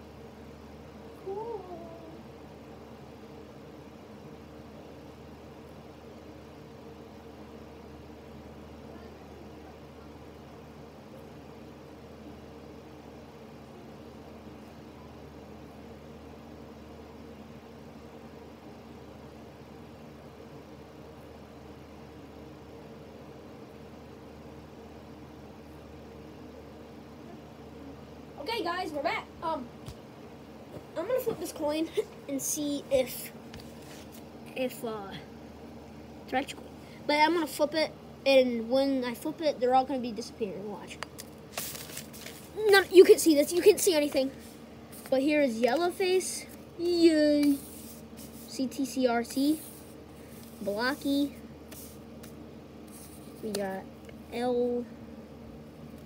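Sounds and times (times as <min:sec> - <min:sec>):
steady low hum: 0:00.0 - 0:56.0.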